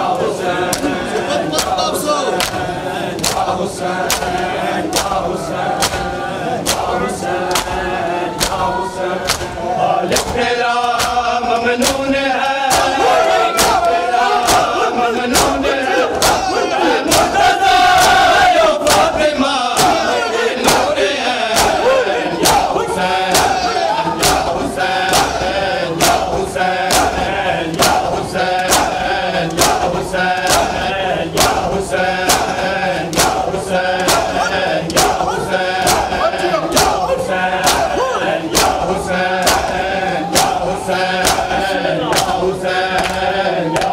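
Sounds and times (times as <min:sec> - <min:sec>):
crowd chanting loudly: 0:00.0 - 0:43.9
crowd shouting: 0:00.0 - 0:43.9
hands slapping chests: 0:01.6 - 0:01.8, 0:03.2 - 0:05.2, 0:05.8 - 0:06.9, 0:09.2 - 0:11.2, 0:11.8 - 0:13.0, 0:17.1 - 0:17.4, 0:21.6 - 0:21.8, 0:23.3 - 0:23.6, 0:24.2 - 0:25.4, 0:26.9 - 0:37.0, 0:37.6 - 0:40.6, 0:41.2 - 0:42.4, 0:43.0 - 0:43.9.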